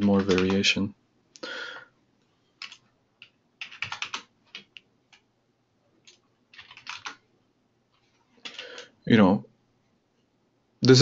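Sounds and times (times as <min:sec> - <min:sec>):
computer keyboard typing: 0:00.0 - 0:00.7, 0:02.6 - 0:05.2, 0:06.0 - 0:07.2, 0:08.4 - 0:08.9.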